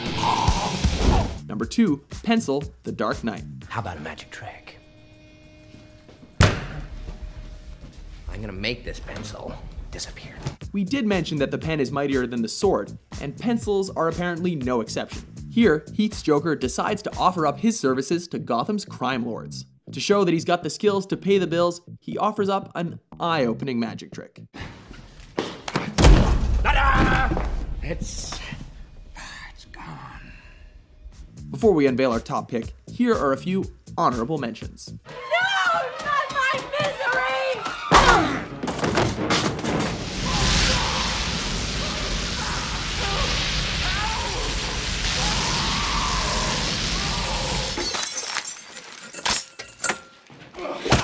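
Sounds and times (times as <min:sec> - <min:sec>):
head slammed onto table: 0:06.4 - 0:06.8, 0:25.8 - 0:27.7, 0:37.9 - 0:40.0
crash and shattering: 0:38.8 - 0:49.6.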